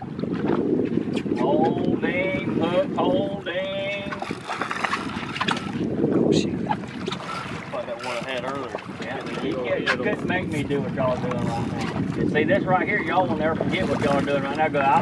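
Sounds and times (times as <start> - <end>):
wind buffeting microphone: 0.0 - 15.0
men's voices: 1.4 - 4.5, 7.6 - 15.0.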